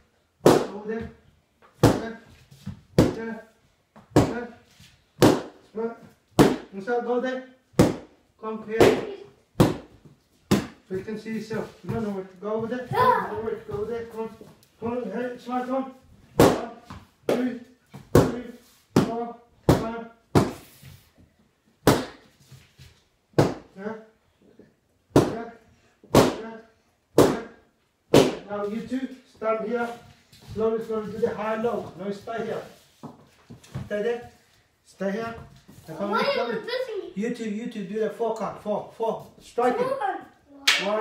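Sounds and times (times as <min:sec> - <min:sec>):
strike smacking a training pad: 0:00.4 - 0:00.8, 0:05.2 - 0:05.6, 0:06.4 - 0:06.7, 0:07.8 - 0:08.1, 0:16.4 - 0:17.4, 0:21.8 - 0:22.2, 0:23.4 - 0:23.7, 0:26.1 - 0:26.4, 0:27.2 - 0:28.5.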